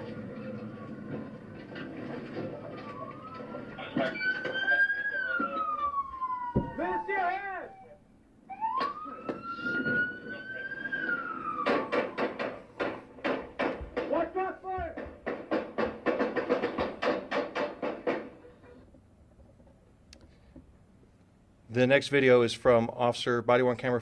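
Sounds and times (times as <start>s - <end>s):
police siren winding: 2.6s - 12.6s
rapid sharp bangs: 11.5s - 18.4s.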